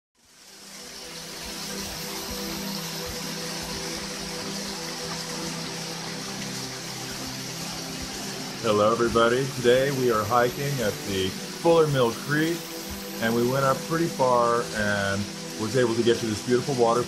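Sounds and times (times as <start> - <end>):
slow held-note music: 0.2 - 17.0
small waterfall rushing: 0.2 - 17.0.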